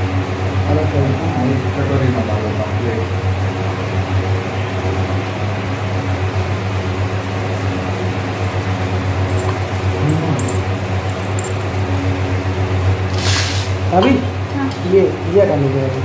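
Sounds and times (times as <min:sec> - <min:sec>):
low motor hum: 0:00.0 - 0:13.1
steel dishes clinking: 0:09.3 - 0:12.2.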